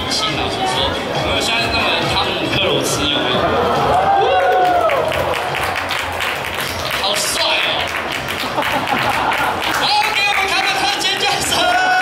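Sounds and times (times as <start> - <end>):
crowd applauding and cheering: 3.4 - 12.0.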